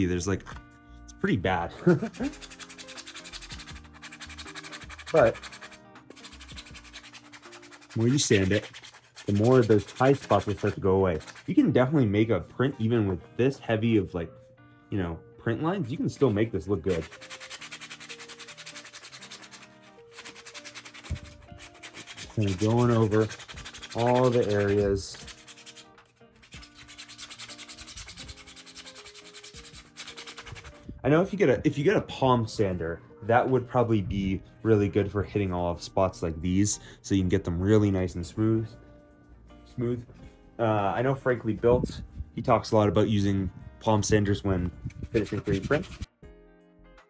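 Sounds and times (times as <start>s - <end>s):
sandpaper scratching plastic: 1.9s - 11.6s, 15.8s - 30.8s, 44.9s - 46.1s.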